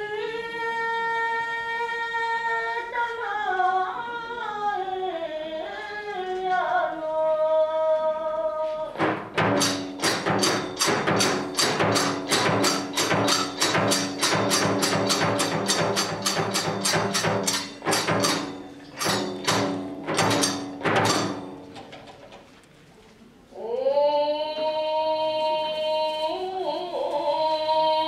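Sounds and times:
drum beating fast rhythm: 0:09.0 - 0:21.8
hand cymbals: 0:09.4 - 0:21.6.

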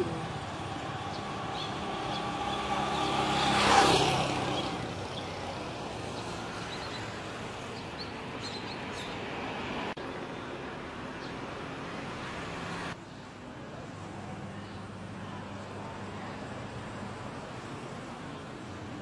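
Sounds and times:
vehicle passing close by: 0:00.0 - 0:07.6
street traffic: 0:00.0 - 0:19.0.

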